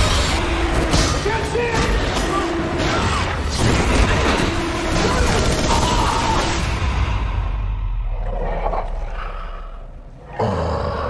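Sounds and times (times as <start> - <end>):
creature snarling roar: 10.2 - 11.0.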